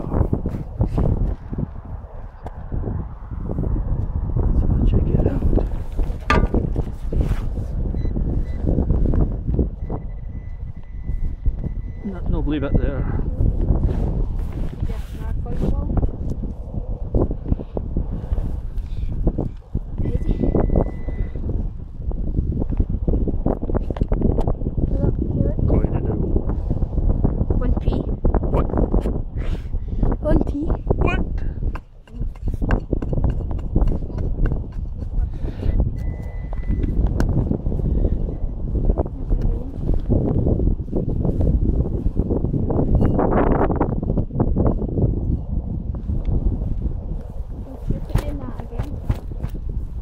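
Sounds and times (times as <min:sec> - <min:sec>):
wind buffeting microphone: 0:00.0 - 0:50.0.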